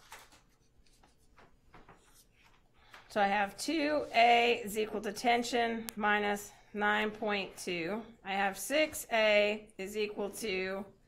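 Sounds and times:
marker scraping on paper: 0:03.7 - 0:04.6.

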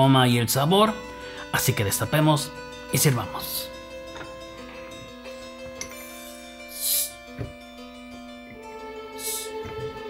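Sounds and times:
background music: 0:00.0 - 0:10.0
bottle cap hiss: 0:05.8 - 0:07.3.

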